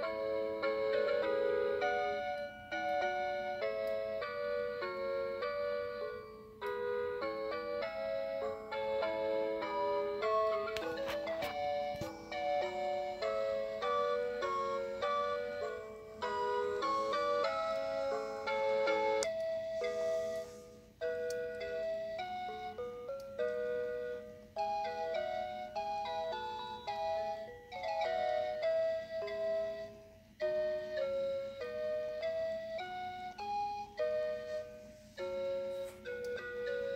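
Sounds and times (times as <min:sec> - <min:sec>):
toy electronic tune: 0:00.0 - 0:36.9.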